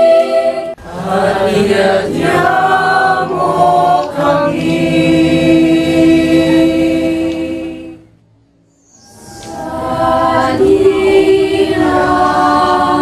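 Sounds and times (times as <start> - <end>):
choir singing: 0.0 - 8.1, 9.0 - 13.0.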